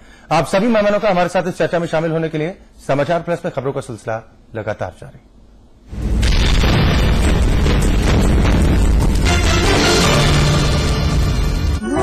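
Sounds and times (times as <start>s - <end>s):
boom sound effect: 5.9s - 11.8s.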